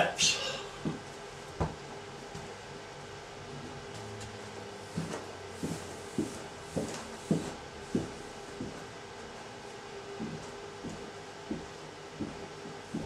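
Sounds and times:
footsteps on carpeted stairs: 0.8s - 2.6s, 3.6s - 9.4s, 10.1s - 13.0s.

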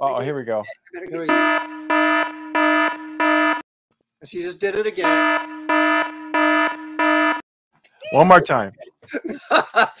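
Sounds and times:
harsh electronic buzzer blasts: 1.2s - 3.6s, 5.0s - 7.4s.

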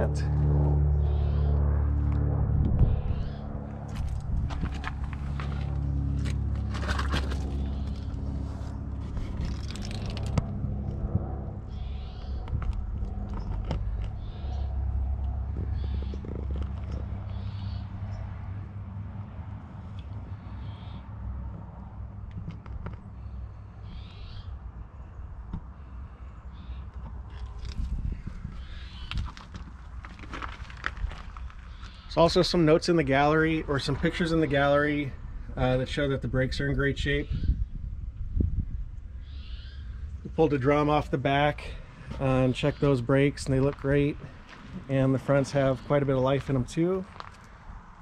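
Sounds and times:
steady low hum: 0.0s - 48.0s
footsteps on gravel: 3.9s - 10.4s, 28.9s - 32.1s, 43.3s - 47.6s.

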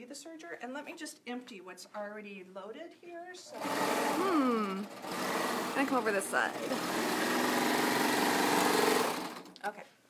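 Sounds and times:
serger sewing machine running: 3.5s - 9.5s.

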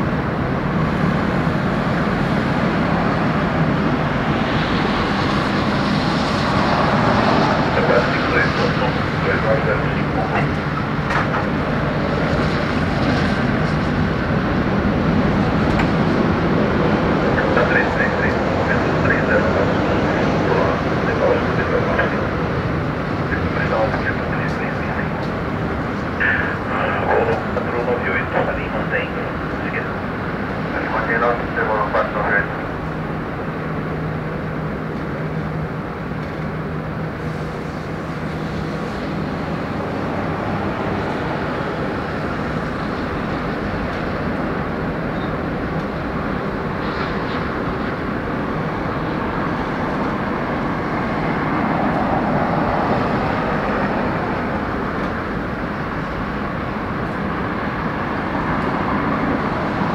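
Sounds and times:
jet engines rumbling: 0.0s - 59.9s
murmur of voices: 26.2s - 30.0s.

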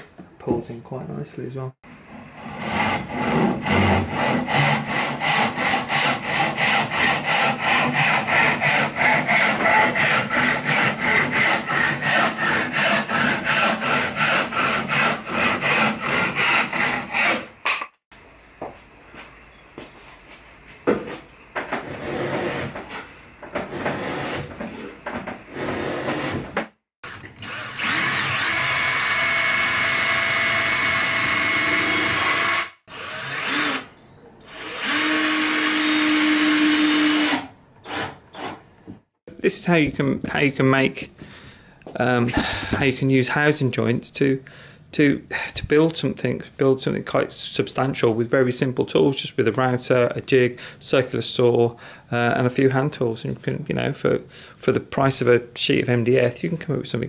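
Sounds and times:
hand saw cutting board: 2.0s - 17.9s, 21.7s - 33.9s
knocks and handling noises: 18.6s - 22.0s, 22.6s - 25.5s
cordless drill running: 27.0s - 33.9s, 34.5s - 38.5s.

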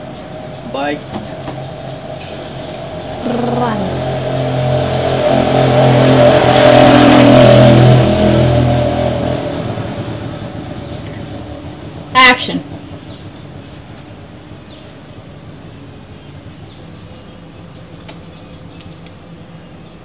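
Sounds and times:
vehicle driving past: 0.0s - 20.0s.

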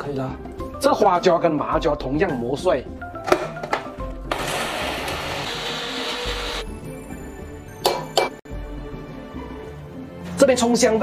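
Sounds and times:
electric spice grinder: 4.3s - 6.6s.

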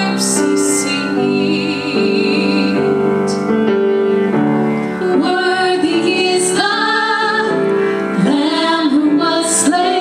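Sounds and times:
women singing worship song: 0.0s - 3.4s, 5.0s - 10.0s.

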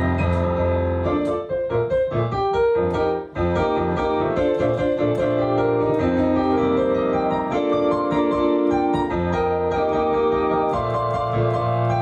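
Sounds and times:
digital piano playing: 0.0s - 12.0s.

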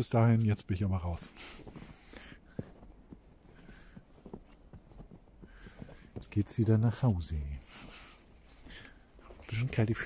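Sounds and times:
footsteps crunching in snow: 1.1s - 10.0s.

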